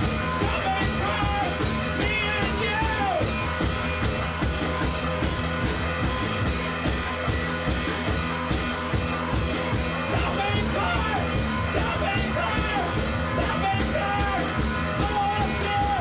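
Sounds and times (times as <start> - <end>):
bass line: 0.0 - 16.0
drum kit beat: 0.0 - 16.0
rock music: 0.0 - 16.0.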